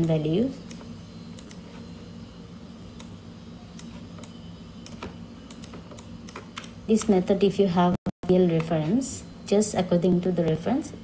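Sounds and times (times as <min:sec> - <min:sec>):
steady low hum: 0:00.0 - 0:11.0
keyboard and mouse clicks: 0:04.9 - 0:07.2.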